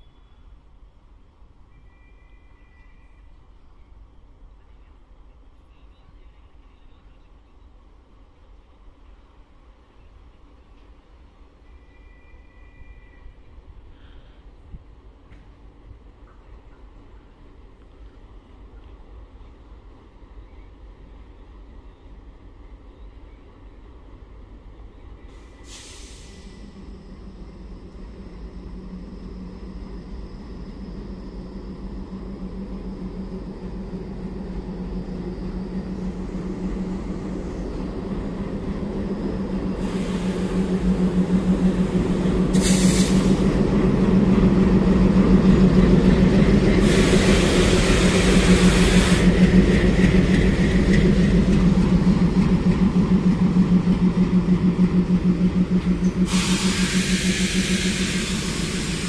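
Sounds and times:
diesel locomotive engine running: 0:25.2 - 0:59.0
air brakes hissing: 0:25.3 - 0:30.6, 0:39.8 - 0:43.7, 0:46.7 - 0:50.1, 0:55.9 - 0:59.0.

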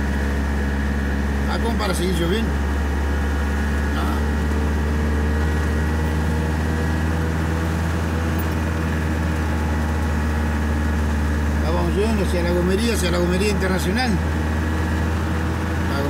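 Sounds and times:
truck engine drone from inside cab: 0:00.0 - 0:16.0.

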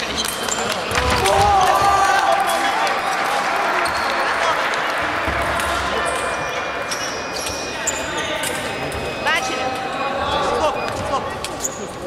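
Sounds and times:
scattered voices: 0:00.0 - 0:12.0.

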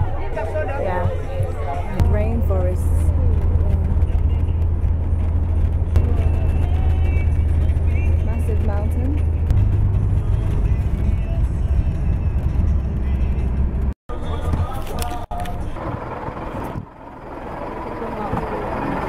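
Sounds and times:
bus engine and road drone: 0:00.0 - 0:19.0.

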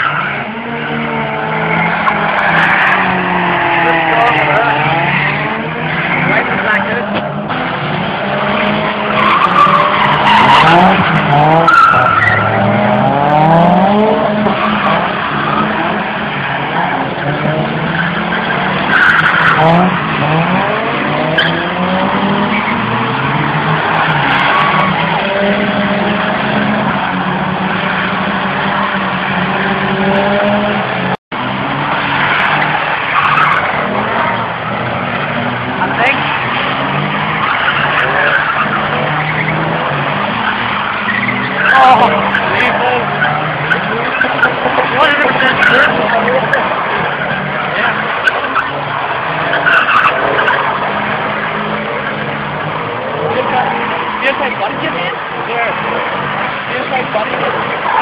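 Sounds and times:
car engines revving: 0:00.0 - 0:58.0
tyres squealing and skidding: 0:00.0 - 0:58.0.

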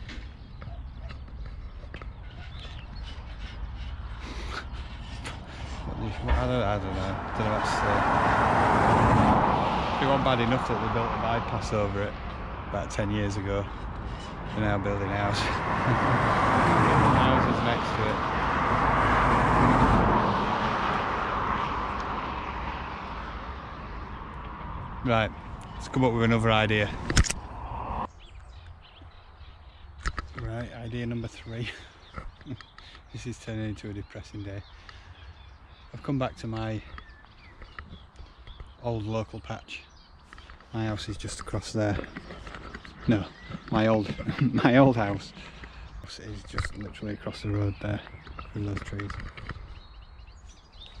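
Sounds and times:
road traffic rumble: 0:00.0 - 0:51.0
wind: 0:00.0 - 0:51.0.

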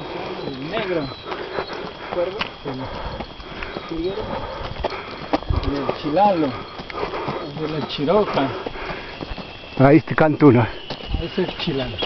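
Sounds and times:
footsteps on dirt road: 0:00.0 - 0:12.0.

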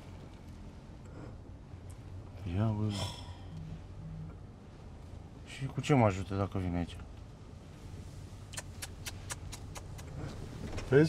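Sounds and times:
car engine and tyres rumbling: 0:00.0 - 0:11.0.

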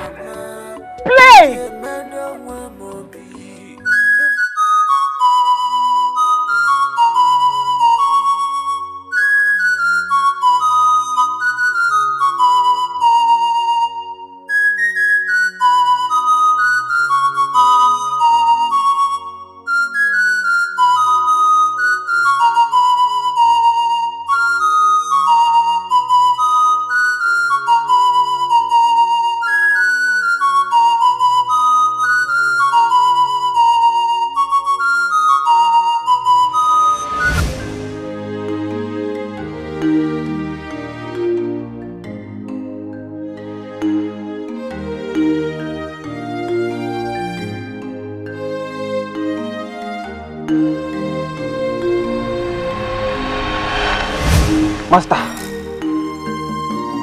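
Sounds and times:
flute melody: 0:00.0 - 0:03.0, 0:03.8 - 0:39.4, 0:49.1 - 0:57.0
low accompaniment: 0:50.7 - 0:56.6.

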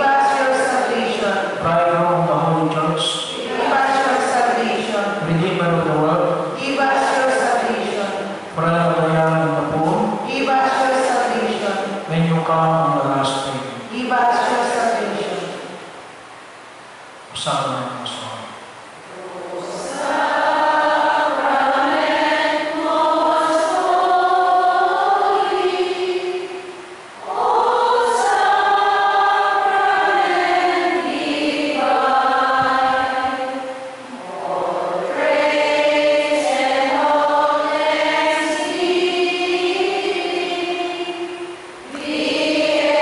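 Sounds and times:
group of voices singing: 0:00.0 - 0:12.2, 0:19.1 - 0:43.0.

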